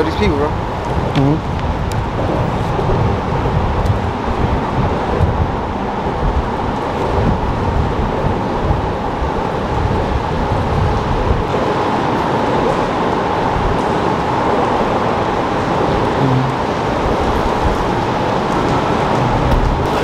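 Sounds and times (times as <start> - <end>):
highway traffic noise: 0.0 - 20.0
wind buffeting microphone: 0.0 - 20.0.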